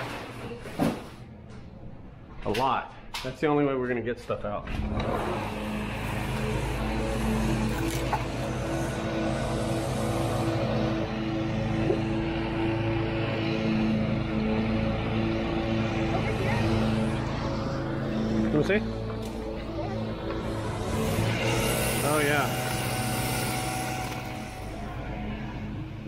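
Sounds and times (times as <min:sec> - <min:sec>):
steady machine hum: 0:04.8 - 0:26.0.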